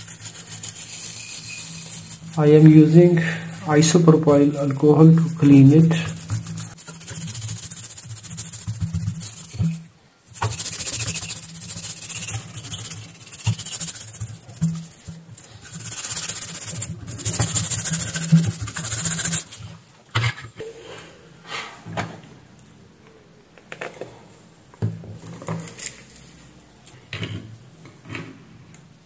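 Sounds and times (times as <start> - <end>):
toothbrush scrubbing circuit board: 0.0 - 19.7.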